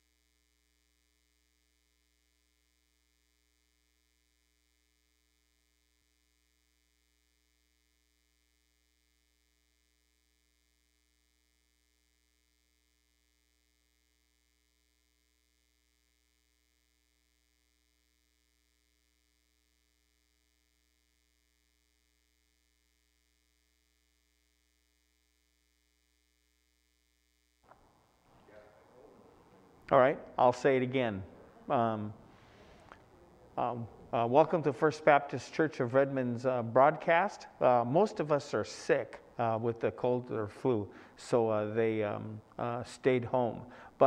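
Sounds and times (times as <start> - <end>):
faint electrical hum with hiss: 0.0 - 44.0.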